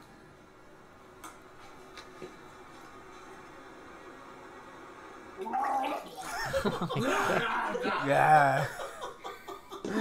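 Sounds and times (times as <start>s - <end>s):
laughter: 6.1s - 10.0s.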